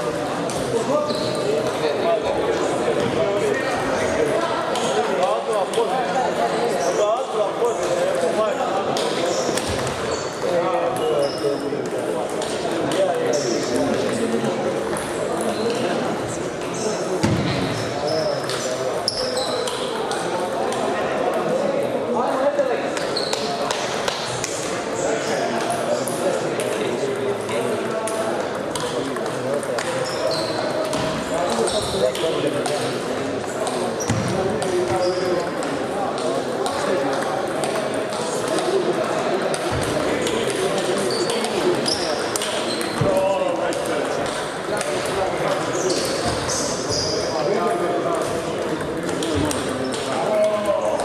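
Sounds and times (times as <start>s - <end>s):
murmur of voices: 0.0s - 51.0s
table tennis balls clicking: 18.3s - 21.6s, 25.6s - 46.3s.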